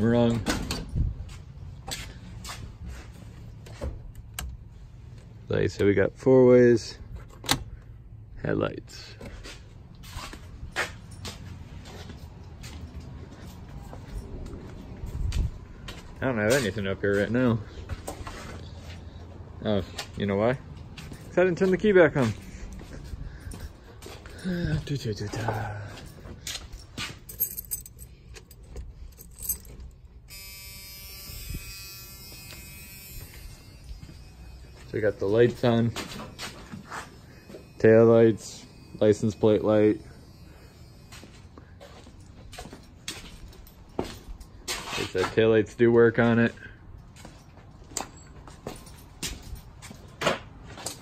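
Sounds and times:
footsteps on concrete floor: 1.1 - 4.1, 9.1 - 29.9, 32.3 - 37.6, 41.0 - 45.4, 46.4 - 51.0
keys jingling and clicking: 22.2 - 30.3, 41.8 - 45.1, 47.0 - 51.0
steady electric buzz: 30.3 - 35.3.

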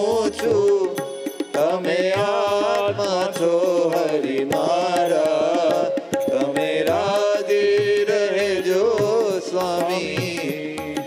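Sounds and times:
percussion beat: 0.0 - 11.0
congregation singing: 1.6 - 11.0.

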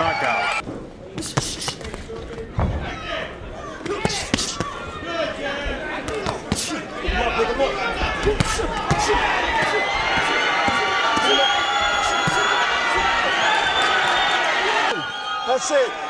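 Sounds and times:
crowd cheering and shouting: 0.0 - 0.6, 2.7 - 16.0
punches landing: 3.7 - 4.9, 5.7 - 14.1.

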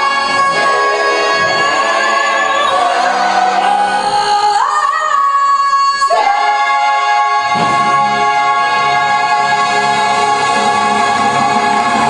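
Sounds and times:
orchestra and chorus: 0.0 - 12.0.

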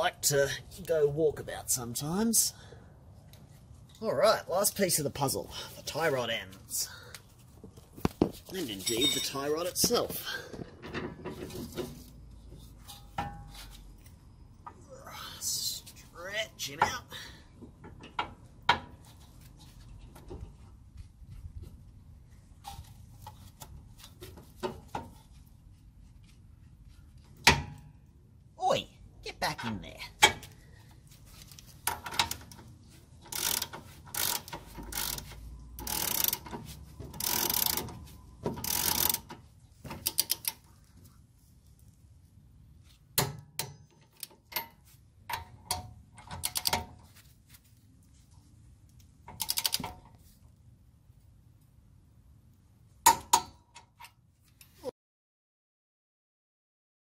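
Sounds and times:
metal tools clinking: 8.5 - 10.0
ratchet wrench ratcheting: 33.2 - 38.0, 38.6 - 39.4, 40.0 - 40.6, 46.3 - 46.8, 49.3 - 50.0.

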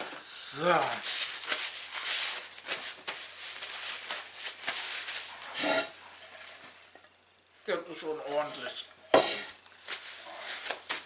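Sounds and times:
rustling: 0.0 - 7.1, 8.2 - 11.0.

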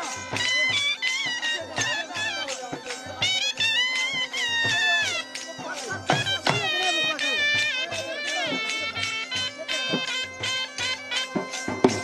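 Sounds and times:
dhol drum beats: 0.0 - 12.0
shrill double-reed pipe melody: 0.0 - 12.0.

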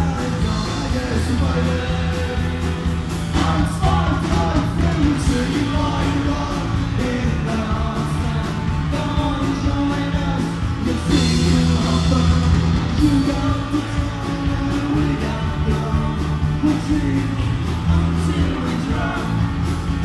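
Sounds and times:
person singing: 0.0 - 19.6
drum kit: 0.0 - 20.0
electric bass: 0.0 - 20.0.

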